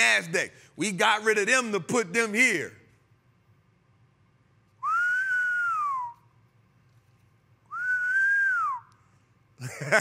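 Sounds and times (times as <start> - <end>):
person whistling: 4.8 - 6.4, 7.7 - 9.1.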